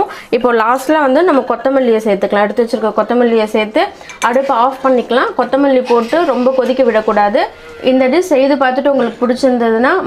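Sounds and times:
person talking: 0:00.4 - 0:10.0
spoon scraping a steel pot: 0:03.9 - 0:09.5.

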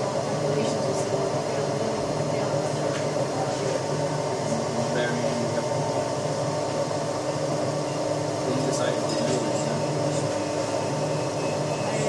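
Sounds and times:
testing machine hum: 0:00.0 - 0:12.0.

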